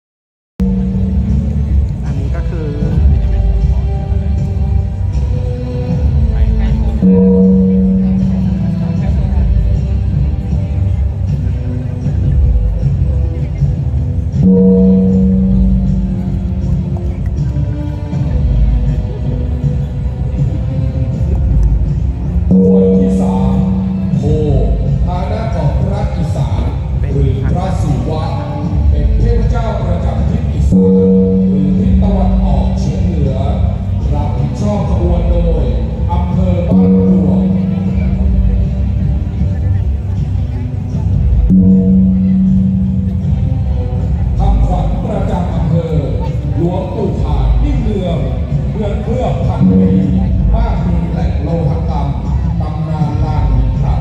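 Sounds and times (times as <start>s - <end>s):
gong struck and ringing: 0.6s - 1.9s, 6.9s - 9.6s, 14.4s - 17.1s, 22.5s - 26.4s, 30.6s - 34.2s, 36.6s - 38.8s, 41.5s - 43.8s, 49.3s - 51.1s
background music: 0.6s - 54.0s
continuous low rumble: 0.6s - 54.0s.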